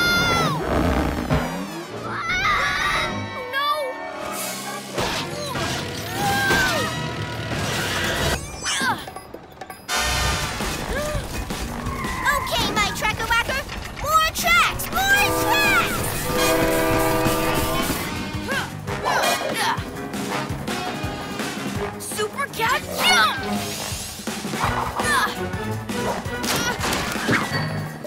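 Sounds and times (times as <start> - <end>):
cartoon action music: 9.9 - 27.9.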